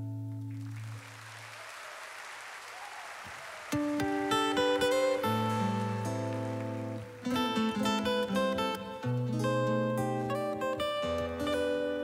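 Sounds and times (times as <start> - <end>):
audience applauding: 0.5 - 8.9.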